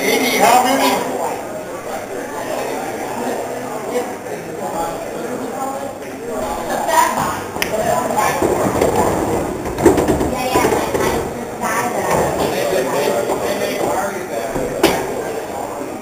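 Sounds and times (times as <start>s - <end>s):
chatter of many voices: 0.0s - 16.0s
pool balls clicking: 7.2s - 11.4s, 12.0s - 15.7s.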